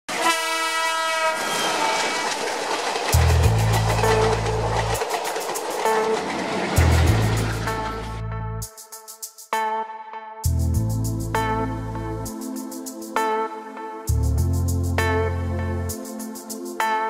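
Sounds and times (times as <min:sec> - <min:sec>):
train horn blaring: 0:00.1 - 0:02.3
passing train clickety-clack: 0:00.1 - 0:08.2
deep bass music notes: 0:03.2 - 0:05.0, 0:06.8 - 0:08.7, 0:10.4 - 0:12.3, 0:14.1 - 0:15.9.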